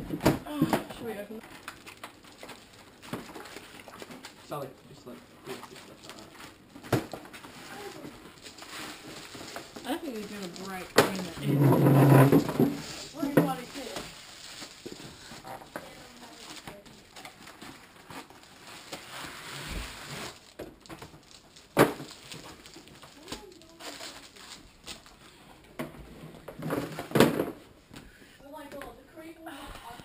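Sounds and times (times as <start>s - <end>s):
cardboard packaging rustling: 0.8s - 4.5s, 5.4s - 25.4s
foil wrapping crinkling: 1.4s - 4.5s, 5.4s - 25.4s.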